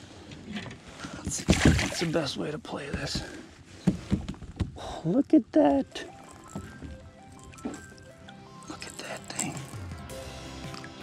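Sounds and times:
water splashing and dripping: 1.3 - 2.2, 5.9 - 11.0
loud splash: 1.4 - 2.1.

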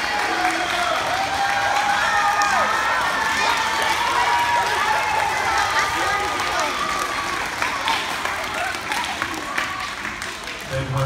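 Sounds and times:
people clapping: 0.0 - 11.0.

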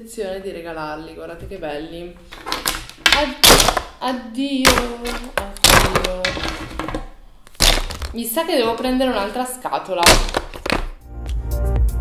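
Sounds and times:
plastic tubes dropped into box: 2.3 - 4.0, 4.7 - 9.3, 10.0 - 11.0
electronic music with beat: 11.0 - 12.0.

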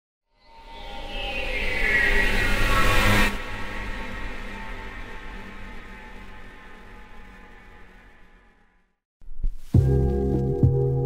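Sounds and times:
low drone: 0.5 - 9.0.

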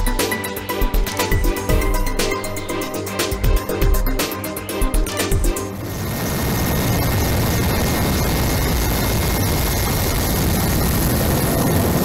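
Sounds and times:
helicopter rotor and engine: 5.3 - 12.0.

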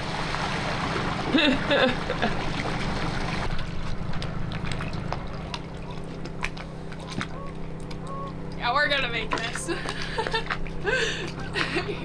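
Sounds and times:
outboard motor running: 0.0 - 12.0.

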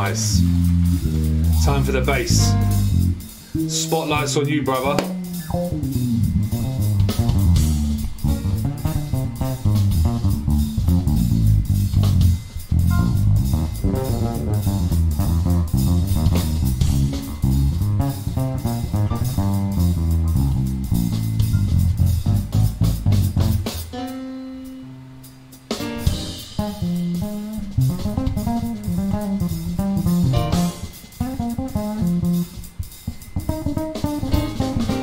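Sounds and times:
electric bass guitar solo: 0.0 - 25.2, 26.0 - 35.0
light drum kit: 0.0 - 35.0.

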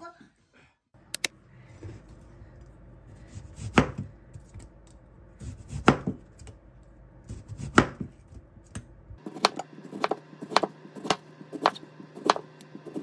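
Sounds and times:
knife slicing radish on board: 5.4 - 6.2, 7.3 - 8.1, 9.2 - 13.0
blade knocking cutting board: 9.2 - 13.0.

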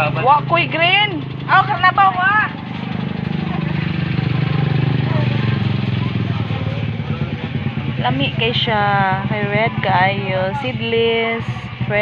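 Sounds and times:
small motorcycle engine running: 0.0 - 12.0.

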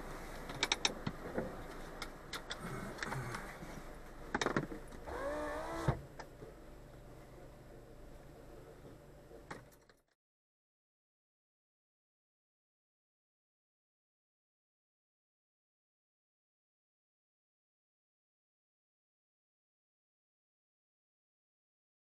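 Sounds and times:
street background noise: 0.0 - 10.1.

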